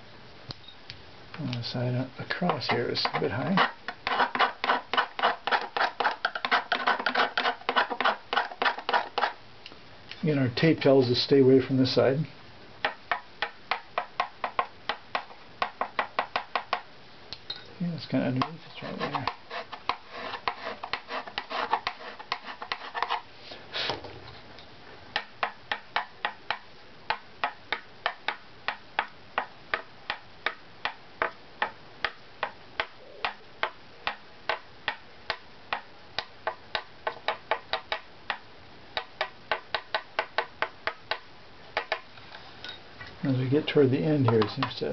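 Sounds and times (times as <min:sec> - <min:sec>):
stick tapping violin plate: 0:44.2 - 0:44.9.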